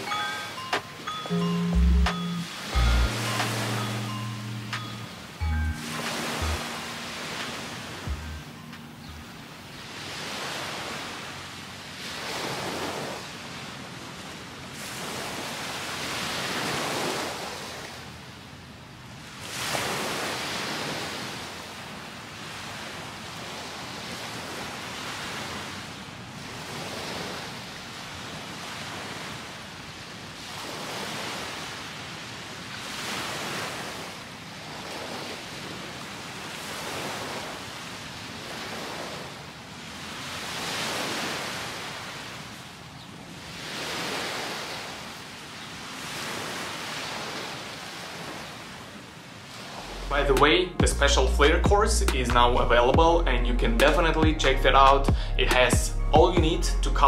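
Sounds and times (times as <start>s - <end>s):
small waves breaking on beach: 2.3s - 50.1s.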